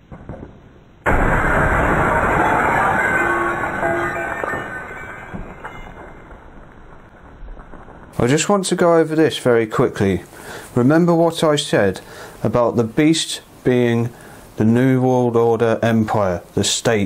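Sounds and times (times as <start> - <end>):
television tube imploding crash: 1.0 - 8.3
glass tinkling and ringing: 2.8 - 6.3.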